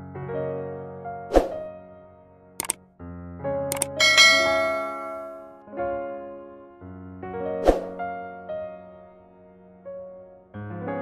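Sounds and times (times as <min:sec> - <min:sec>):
soft piano music: 0:00.0 - 0:11.0
double mouse click: 0:02.6 - 0:02.8, 0:03.7 - 0:04.0
bright bell chime: 0:04.0 - 0:05.6.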